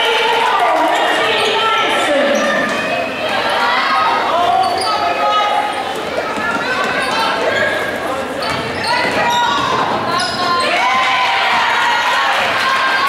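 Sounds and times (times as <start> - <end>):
indistinct chatter of voices: 0.0 - 13.0.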